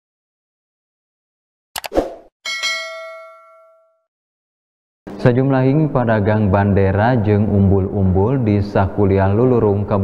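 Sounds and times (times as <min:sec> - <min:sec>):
bell ding: 0:02.4 - 0:04.1.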